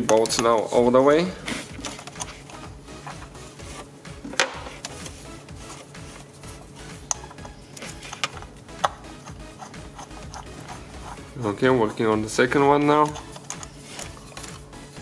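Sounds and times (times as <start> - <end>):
faint background music: 0.0 - 15.0.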